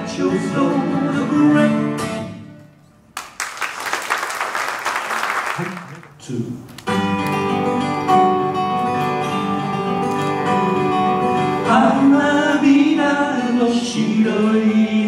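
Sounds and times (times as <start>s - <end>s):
acoustic guitars strumming: 0.0s - 2.9s, 6.8s - 15.0s
audience applause: 3.2s - 6.2s
person singing: 11.6s - 15.0s.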